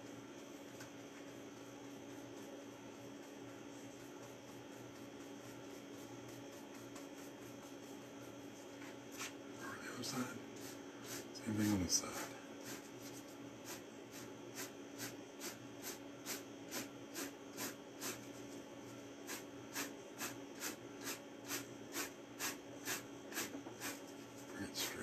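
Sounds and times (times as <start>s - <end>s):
brush stroking across canvas: 1.1s - 24.4s.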